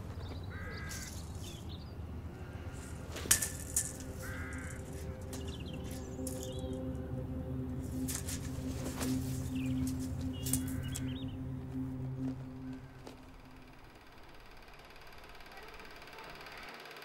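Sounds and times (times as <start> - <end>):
low outdoor rumble: 0.0 - 16.7
soft sustained music tones: 0.0 - 17.0
bird calling: 0.2 - 3.0, 3.8 - 13.7.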